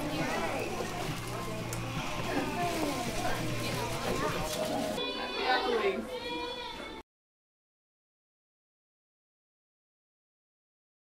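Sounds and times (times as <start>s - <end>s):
people talking: 0.0s - 7.0s
child's high-pitched drawn-out voice: 5.0s - 7.0s.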